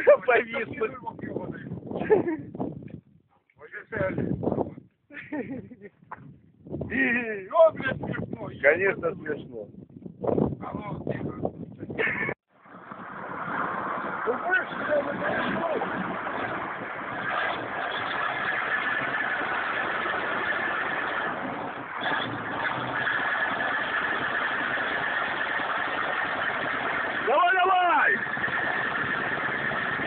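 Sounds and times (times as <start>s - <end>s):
heavy truck engine running: 12.6s - 27.3s, 28.2s - 30.0s
bystanders shouting: 27.2s - 28.4s.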